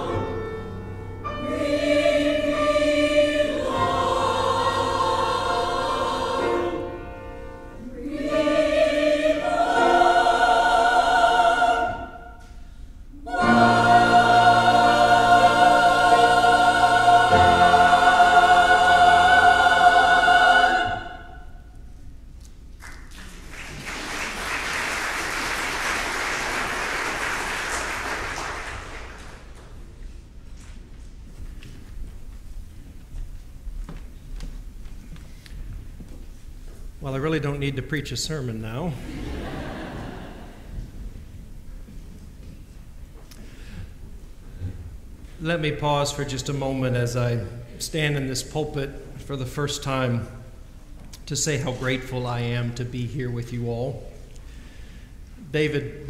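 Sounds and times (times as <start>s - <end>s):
church choir singing: 0.0s - 21.9s, 38.6s - 41.4s
congregation applauding: 22.8s - 29.8s.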